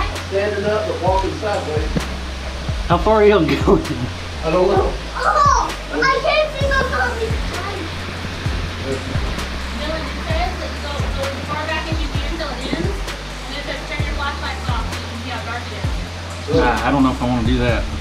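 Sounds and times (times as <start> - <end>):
indistinct voices talking: 0.0 - 18.0
low rumble: 1.0 - 15.2, 15.8 - 18.0.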